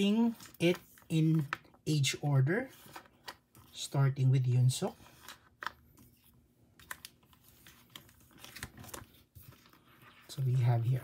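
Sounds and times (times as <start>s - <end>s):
page turning: 0.0s - 1.7s, 5.0s - 11.0s
plastic pages crinkling: 0.0s - 1.8s, 5.1s - 11.0s.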